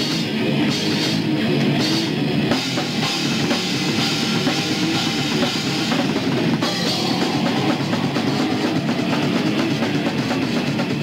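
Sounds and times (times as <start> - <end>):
distorted guitar: 0.0 - 11.0
fast dense drumming: 0.0 - 11.0.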